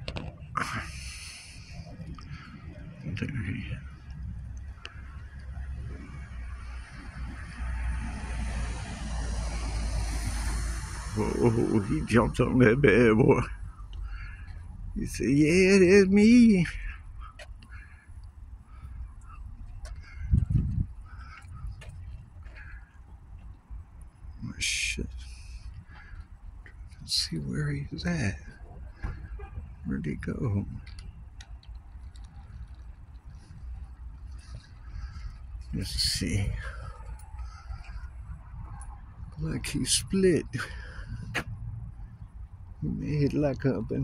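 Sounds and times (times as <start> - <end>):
wind rumble on microphone: 0.0 - 12.7, 19.4 - 27.2, 27.8 - 44.0
faint animal calls: 16.7 - 23.2
microphone handling rumble: 19.6 - 22.6
faint clicks: 30.8 - 35.7.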